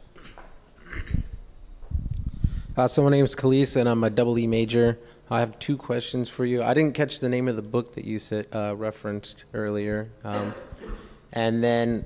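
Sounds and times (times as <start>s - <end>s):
microphone handling thumps and rustles: 1.0s - 2.8s.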